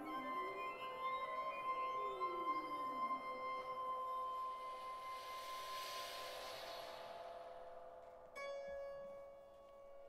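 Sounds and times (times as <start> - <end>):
flute chamber music: 0.0 - 5.6
breathy hiss: 4.8 - 8.3.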